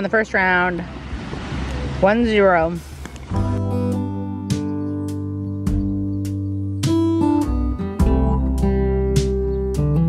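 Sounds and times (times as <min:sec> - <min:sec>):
acoustic guitar strumming: 0:03.3 - 0:10.0.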